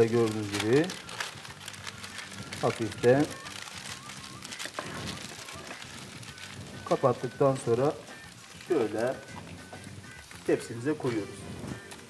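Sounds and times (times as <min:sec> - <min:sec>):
baking paper rustling and crinkling: 0:00.0 - 0:11.8.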